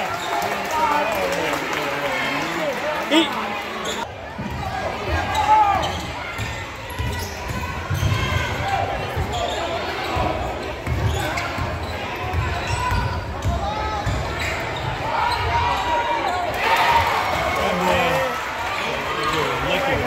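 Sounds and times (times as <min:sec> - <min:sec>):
spectators talking: 0:00.0 - 0:20.0.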